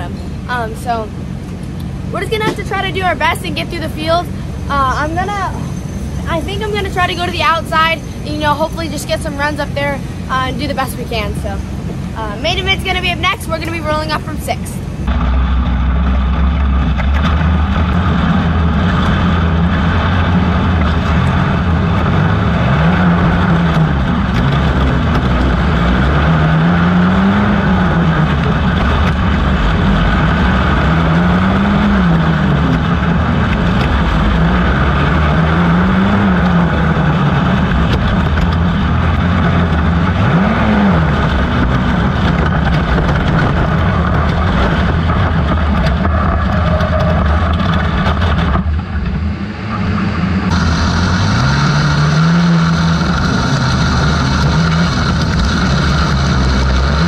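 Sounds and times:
kart engine racing: 0.0 - 57.0
other karts running: 0.0 - 57.0.

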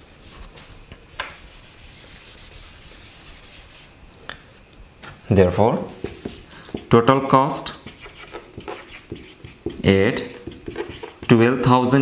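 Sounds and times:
faint rubbing: 1.3 - 4.0, 6.0 - 11.4
marker tapping on whiteboard: 6.0 - 6.9, 7.8 - 11.3.

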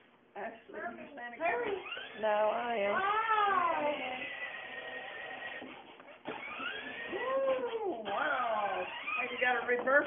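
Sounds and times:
toy car electric motor whirring: 1.6 - 2.4, 3.0 - 9.9.

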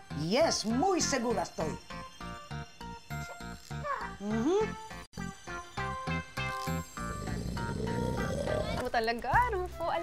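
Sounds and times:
background music with quick beat: 8.8 - 10.0.

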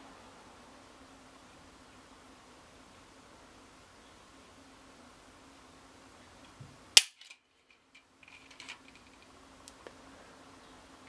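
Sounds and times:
faint clicks and handling noises: 6.4 - 10.0.

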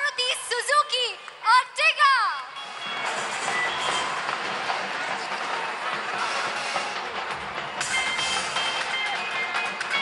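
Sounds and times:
audience cheering and applauding: 0.0 - 10.0.

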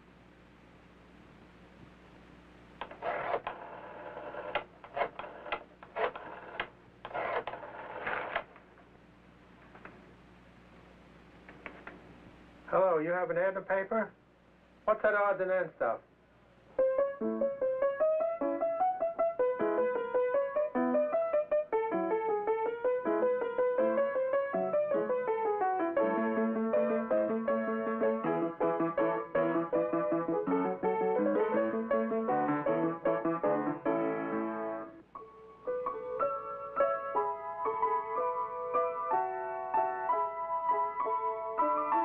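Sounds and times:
rotary phone dial whirring and clicking: 2.8 - 8.6
piano music: 16.7 - 42.0.

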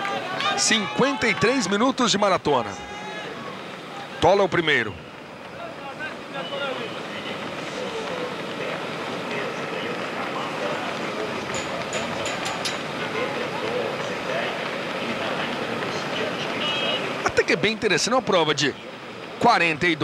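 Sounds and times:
faint voices: 0.0 - 20.0
steady rushing noise: 0.0 - 20.0.

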